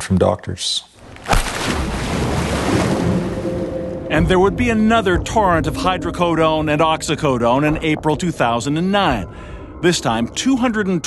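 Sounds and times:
low rumble: 1.5s - 11.0s.

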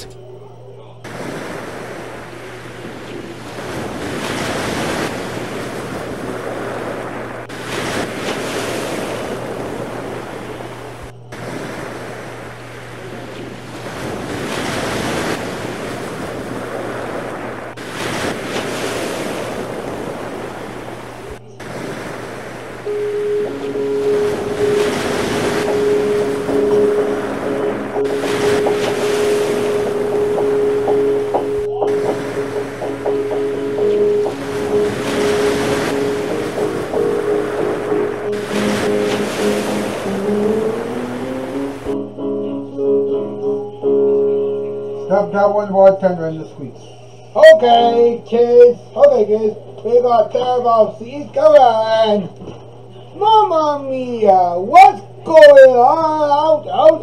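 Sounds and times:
steady low hum: 0.0s - 4.2s, 8.9s - 18.5s
rushing water: 1.1s - 42.0s
held musical note: 22.8s - 45.4s.

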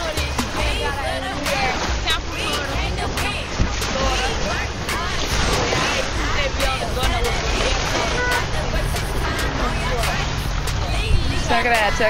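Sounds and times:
indistinct talking: 0.0s - 12.0s
wind rumbling on microphone: 0.7s - 12.0s.

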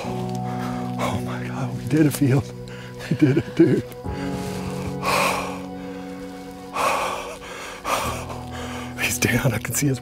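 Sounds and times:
man breathing heavily: 0.0s - 1.3s, 2.6s - 9.0s
background music: 0.0s - 10.0s.

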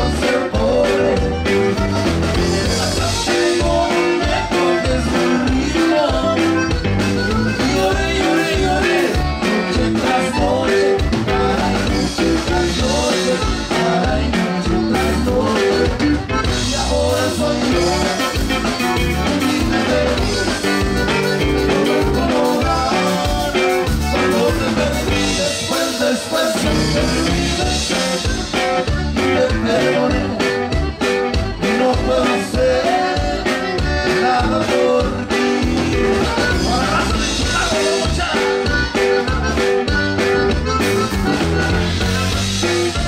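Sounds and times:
button accordion melody: 0.0s - 43.0s
drum kit beat: 0.0s - 43.0s
strummed guitar: 0.0s - 43.0s.

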